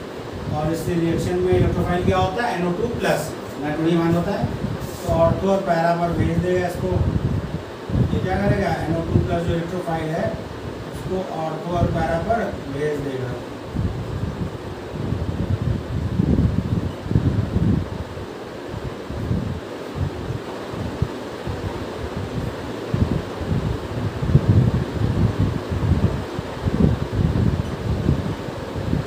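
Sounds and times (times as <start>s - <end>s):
steady fan-like hum: 0.0s - 29.0s
wind buffeting microphone: 0.3s - 29.0s.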